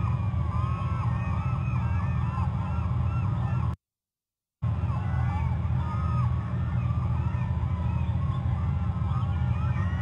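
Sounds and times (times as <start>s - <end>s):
flock of birds honking: 0.0s - 3.7s, 4.8s - 10.0s
steady low hum: 0.0s - 3.8s, 4.6s - 10.0s.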